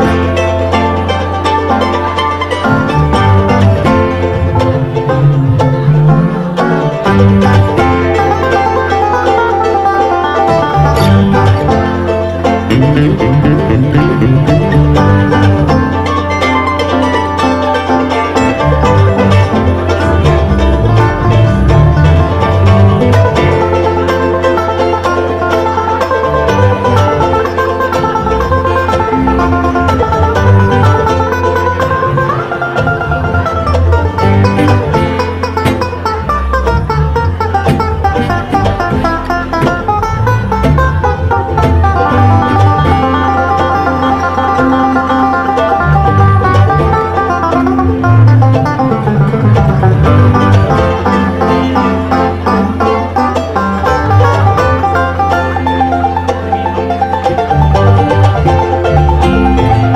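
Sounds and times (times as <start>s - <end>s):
fast banjo picking: 0.0s - 59.9s
guitar: 0.0s - 59.9s
low bass line: 0.0s - 59.9s.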